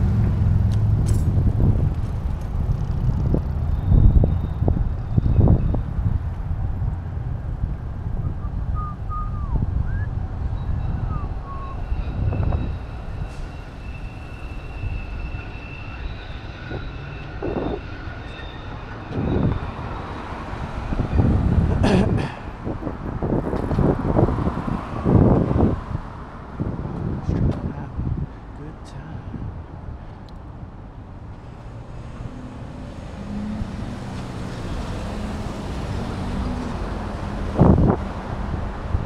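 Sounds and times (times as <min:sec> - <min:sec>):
road traffic going by: 0:00.0 - 0:39.0
wind rumbling on microphone: 0:00.0 - 0:39.0.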